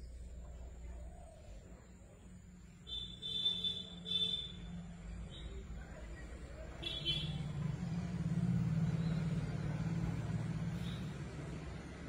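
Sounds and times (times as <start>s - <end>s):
vehicle engine hum passing by: 3.9s - 12.0s.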